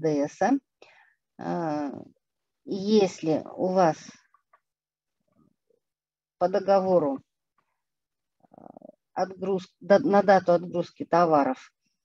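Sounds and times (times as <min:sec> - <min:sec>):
woman lecturing: 0:01.4 - 0:02.1, 0:02.7 - 0:04.1, 0:06.4 - 0:07.2, 0:09.2 - 0:11.6.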